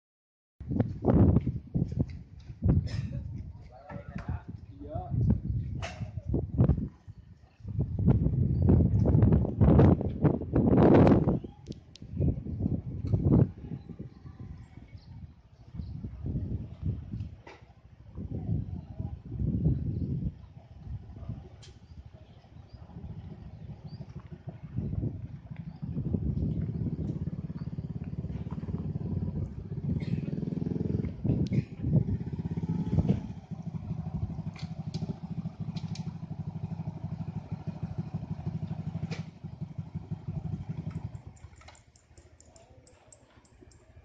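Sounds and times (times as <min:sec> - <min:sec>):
motorcycle engine idling: 0:18.1 - 0:44.0.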